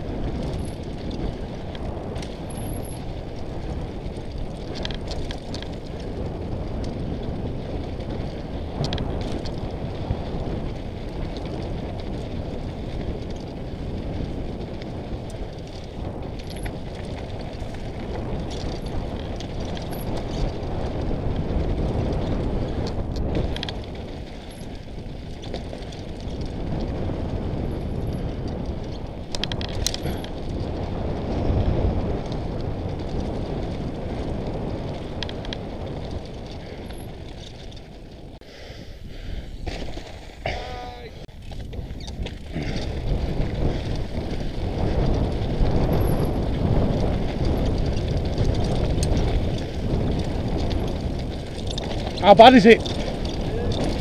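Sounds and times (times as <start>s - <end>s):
bike knocks and rattles: 0.0s - 38.4s, 39.5s - 54.0s
wind rumble on microphone: 0.0s - 54.0s
tyres crunching over stones: 39.5s - 54.0s.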